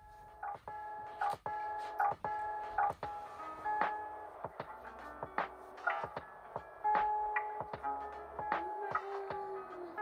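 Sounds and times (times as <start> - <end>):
light clicking beat: 0.0 - 10.0.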